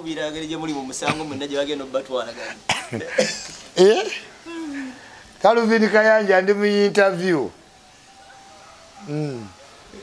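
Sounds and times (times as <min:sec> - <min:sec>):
men talking: 0:00.0 - 0:07.6, 0:08.6 - 0:10.0
man coughing: 0:02.7 - 0:04.2.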